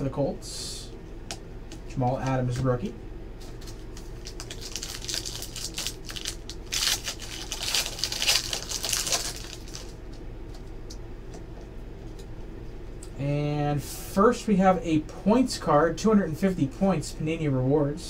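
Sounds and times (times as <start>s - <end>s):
foil wrapper tearing and crinkling: 3.4s - 10.0s.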